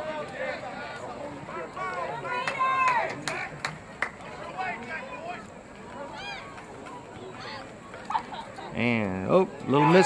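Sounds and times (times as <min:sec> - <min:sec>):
distant voices shouting: 0:09.4 - 0:10.0.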